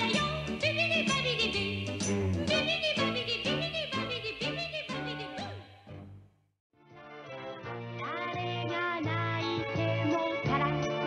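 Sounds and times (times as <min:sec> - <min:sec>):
person singing: 0:00.0 - 0:05.8, 0:08.0 - 0:11.0.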